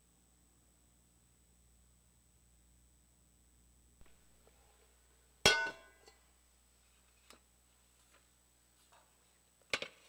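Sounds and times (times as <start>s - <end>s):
communion ware clinking: 5.5s - 6.2s.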